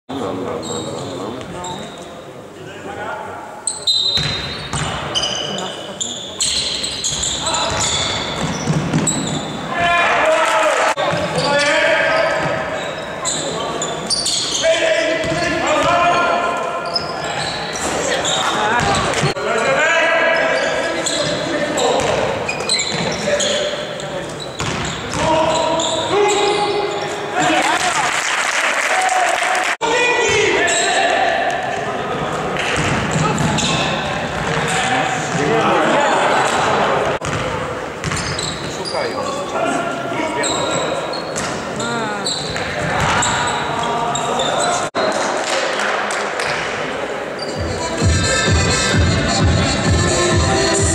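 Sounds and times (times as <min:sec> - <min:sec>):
voices calling out in hall: 0:00.1 - 0:50.9
basketball bouncing on wooden court: 0:04.2 - 0:05.1, 0:07.1 - 0:09.6, 0:18.8 - 0:19.3, 0:24.6 - 0:25.6, 0:32.8 - 0:33.7, 0:37.2 - 0:38.6.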